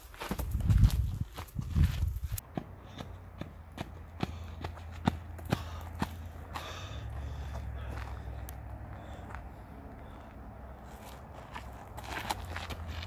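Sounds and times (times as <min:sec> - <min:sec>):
footsteps clicking on pavement: 0:00.0 - 0:13.0
hurried footsteps: 0:00.0 - 0:13.0.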